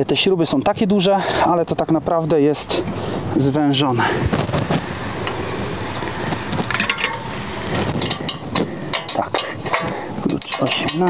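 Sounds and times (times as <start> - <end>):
rustling and scraping: 4.0 - 11.0
sharp metallic clicks: 5.2 - 11.0.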